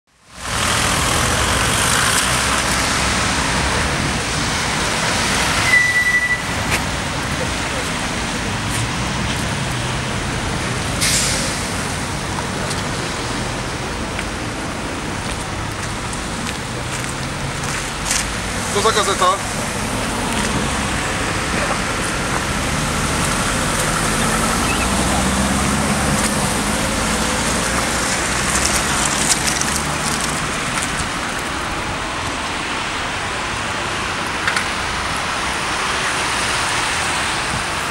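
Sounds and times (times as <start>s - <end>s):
vehicles passing on wet road: 0.2s - 37.9s.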